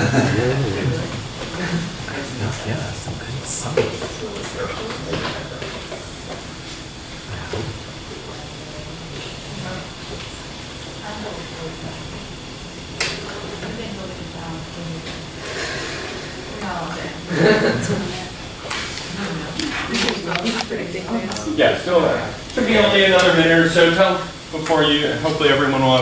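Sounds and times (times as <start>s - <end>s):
steady hiss: 0.0s - 11.7s, 15.4s - 26.0s
murmur of people talking: 0.0s - 26.0s
louder voice: 2.2s - 3.9s.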